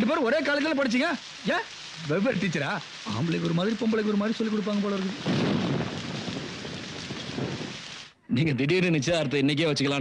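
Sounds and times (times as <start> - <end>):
rain falling: 0.0 - 8.2.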